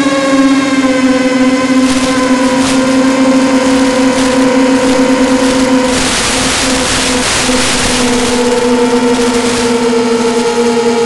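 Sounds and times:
quadcopter motors buzzing: 0:01.0 - 0:11.0
radio static hiss: 0:01.7 - 0:11.0.

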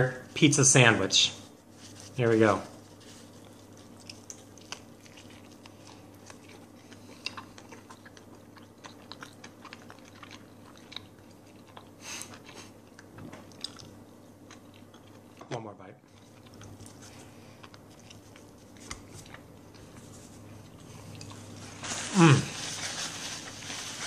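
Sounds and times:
steady low hum: 0:00.0 - 0:24.0
man chewing food: 0:02.8 - 0:24.0.

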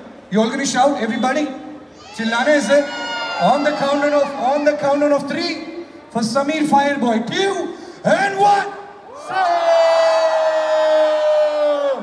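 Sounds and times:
crowd cheering: 0:02.4 - 0:05.0.

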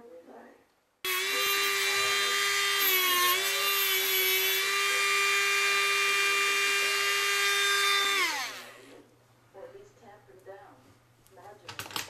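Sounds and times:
rotary tool whining cutting metal: 0:01.1 - 0:09.0
motor spinning down: 0:04.2 - 0:09.0.

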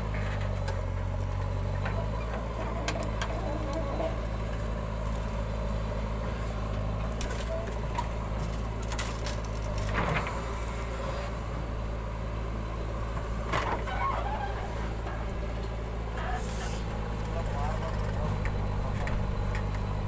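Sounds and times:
diesel engine running: 0:00.0 - 0:20.0
knocks and clunks: 0:13.1 - 0:15.8.

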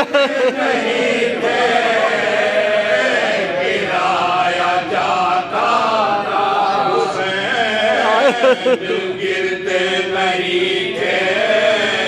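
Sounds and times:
men chanting in unison: 0:00.0 - 0:12.0.

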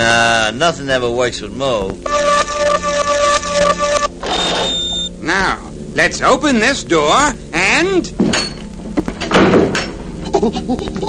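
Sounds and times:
buzzing stuttering two-note hum: 0:01.9 - 0:08.0.

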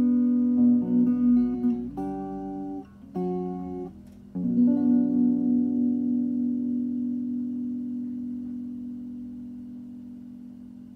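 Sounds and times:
acoustic guitar chord ringing: 0:00.0 - 0:10.9.

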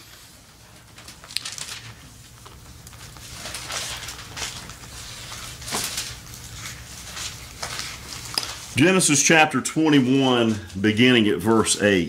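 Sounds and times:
low steady hum: 0:00.0 - 0:12.0
paper pages rustling: 0:00.6 - 0:08.8.

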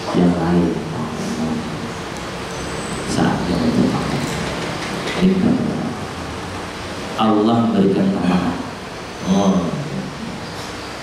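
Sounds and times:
man speaking into a microphone: 0:00.0 - 0:02.0, 0:03.1 - 0:06.1, 0:07.2 - 0:10.5.

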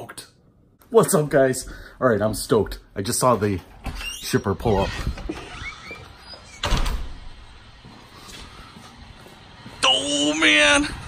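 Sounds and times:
door opening and shutting: 0:03.7 - 0:07.7.

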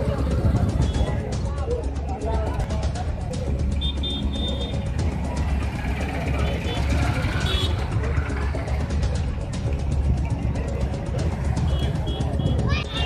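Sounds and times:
background music: 0:00.0 - 0:13.0
indistinct voices: 0:00.0 - 0:13.0
road traffic: 0:00.0 - 0:13.0.

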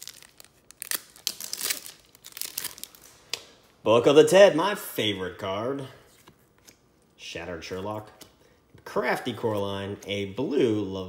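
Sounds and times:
wrapper tearing and crinkling: 0:00.0 - 0:03.1.

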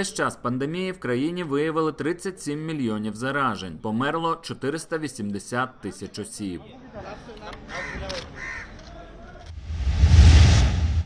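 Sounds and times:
whoosh with low rumble: 0:09.6 - 0:11.0.

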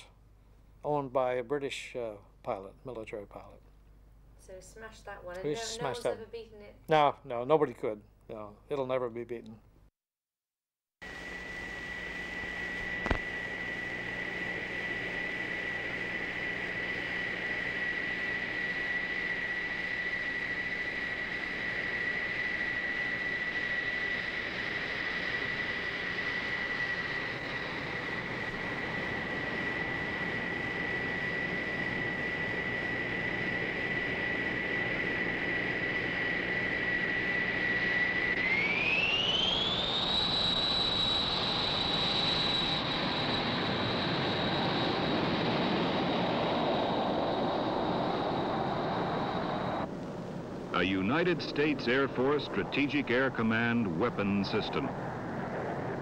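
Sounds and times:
jet engines whining: 0:11.0 - 0:56.0.

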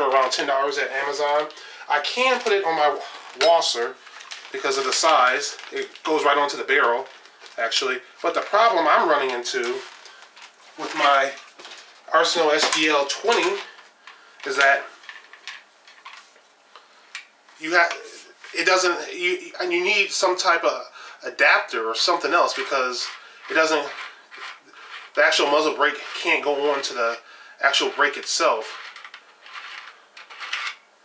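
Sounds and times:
metal clinking and scraping: 0:28.6 - 0:30.8.

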